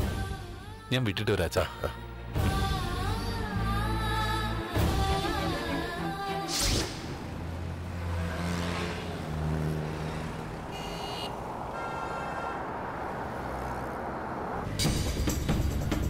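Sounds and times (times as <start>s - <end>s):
cars driving past: 6.7s - 15.7s
motor scooter driving past: 7.0s - 14.8s.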